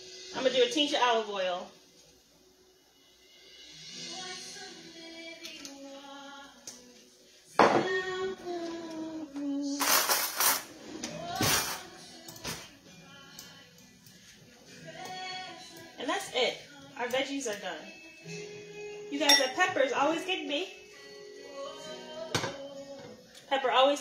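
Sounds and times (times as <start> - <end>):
background music: 0.0 - 24.0
woman singing: 4.0 - 24.0.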